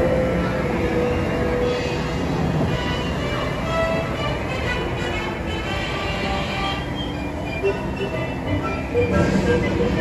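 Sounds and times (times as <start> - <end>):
soundtrack music with short notes: 2.8 - 10.0.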